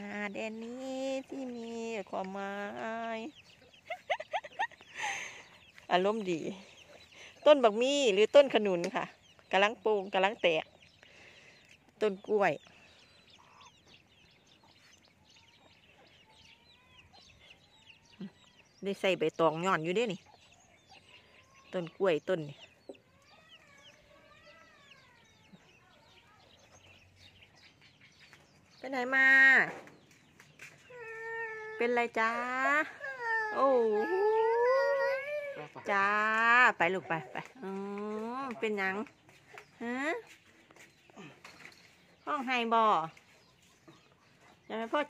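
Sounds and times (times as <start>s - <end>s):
small birds chirping: 0.0s - 45.0s
small child crying: 30.9s - 31.9s, 32.9s - 35.8s.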